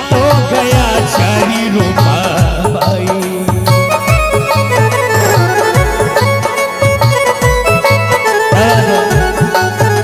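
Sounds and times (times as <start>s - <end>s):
dholak playing steady rhythm: 0.0s - 10.0s
melody of held notes: 0.0s - 10.0s.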